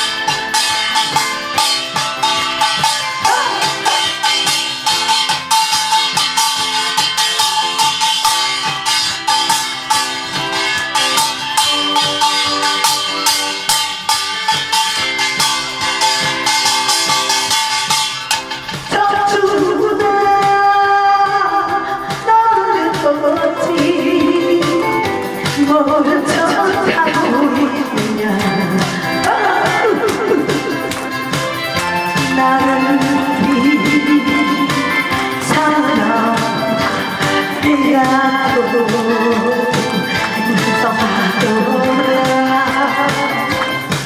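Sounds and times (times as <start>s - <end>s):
wavering melody line: 0.0s - 20.2s, 22.3s - 44.0s
rattling percussion beat: 0.0s - 44.0s.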